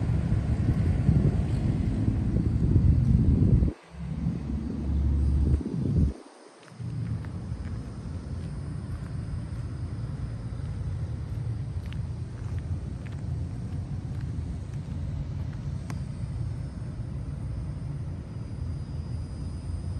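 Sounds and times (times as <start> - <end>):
low outdoor rumble: 0.0 - 19.9
faint ticks: 6.6 - 16.4.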